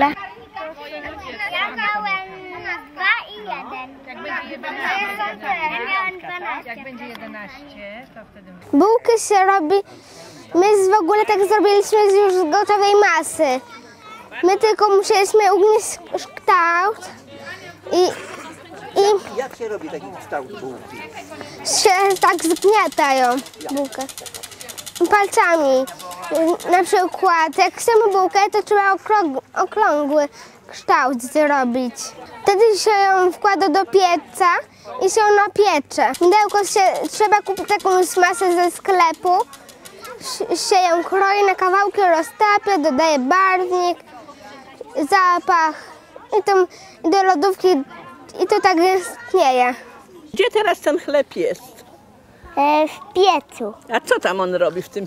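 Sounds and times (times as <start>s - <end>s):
children talking: 0.0s - 55.0s
fast high-pitched ticking: 21.7s - 28.4s, 36.0s - 40.2s.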